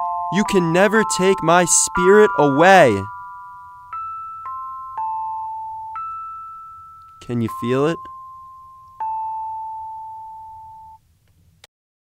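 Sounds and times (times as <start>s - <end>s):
bell-like chime ringing: 0.0s - 11.0s.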